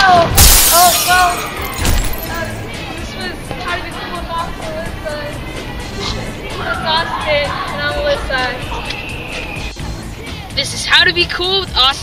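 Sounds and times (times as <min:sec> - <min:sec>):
music: 0:00.0 - 0:12.0
glass shattering crash: 0:00.4 - 0:02.6.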